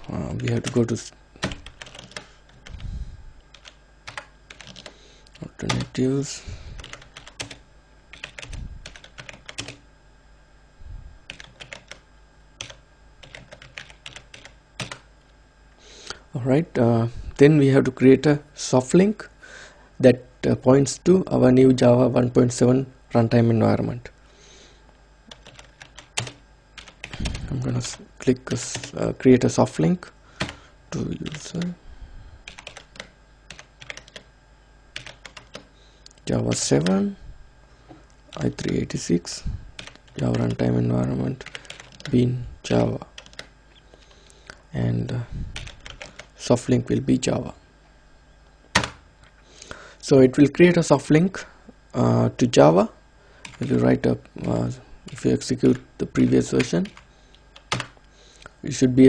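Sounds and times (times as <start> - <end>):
computer keyboard typing: 1.4 - 2.8, 3.5 - 6.0, 6.8 - 9.8, 11.3 - 12.0, 12.6 - 15.1, 25.3 - 28.0, 28.6 - 29.0, 31.2 - 31.7, 32.5 - 34.3, 35.0 - 35.7, 39.8 - 40.6, 41.4 - 42.2, 43.2 - 43.5, 45.6 - 46.3, 48.7 - 49.0, 53.4 - 53.8, 56.3 - 58.0.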